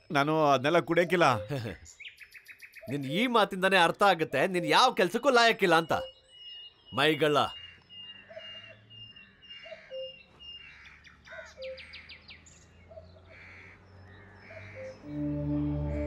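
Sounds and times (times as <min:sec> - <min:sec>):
birds chirping: 0:00.0 - 0:16.0
sustained low music tones: 0:14.9 - 0:16.0.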